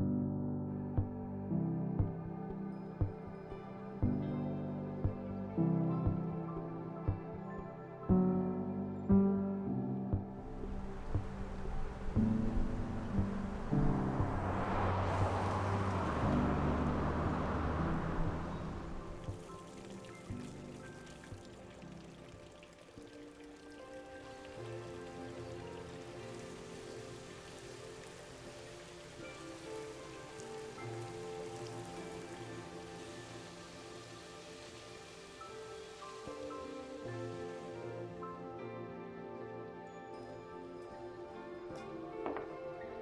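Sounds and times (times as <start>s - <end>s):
film score sustained notes: 0.0s - 43.0s
rain falling: 10.4s - 38.4s.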